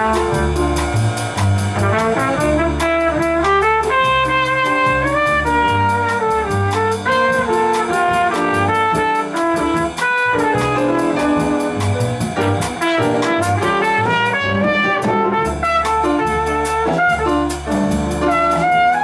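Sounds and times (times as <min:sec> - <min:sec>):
trumpet jazz solo: 0:00.0 - 0:19.0
upright bass notes: 0:00.0 - 0:19.0.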